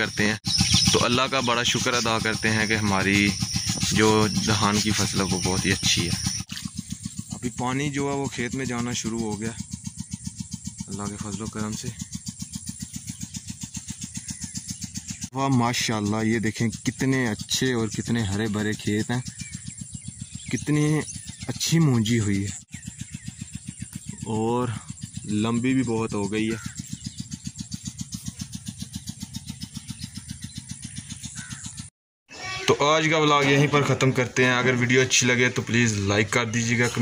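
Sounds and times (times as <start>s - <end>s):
diesel engine running steadily: 0.0s - 31.9s, 33.3s - 37.0s.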